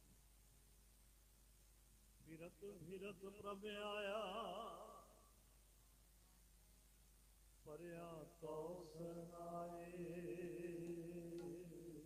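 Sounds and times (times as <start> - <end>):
man chanting devotional singing: 7.7 - 12.0.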